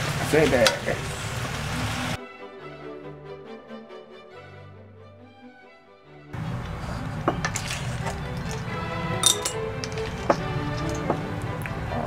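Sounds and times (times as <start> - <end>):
food sizzling in a frying pan: 0.0 - 2.2
background music with sustained notes: 1.7 - 12.0.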